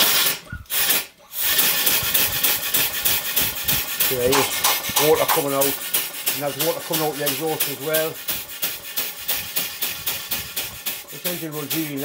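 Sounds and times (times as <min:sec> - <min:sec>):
compressed air hiss: 0:00.0 - 0:12.0
steam engine exhaust beats: 0:00.0 - 0:12.0.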